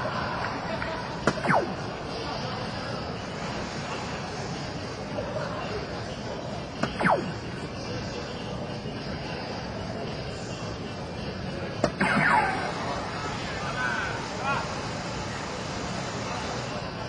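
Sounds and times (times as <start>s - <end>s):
hall chatter: 0.0s - 17.0s.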